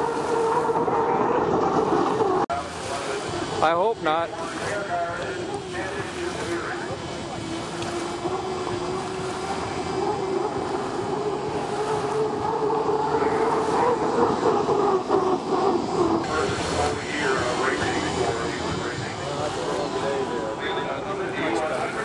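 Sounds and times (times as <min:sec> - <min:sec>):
boat turbine engine whine: 0:00.0 - 0:22.0.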